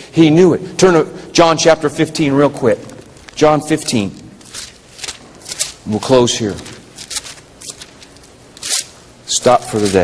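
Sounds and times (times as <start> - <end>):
book pages turning: 2.8 - 10.0.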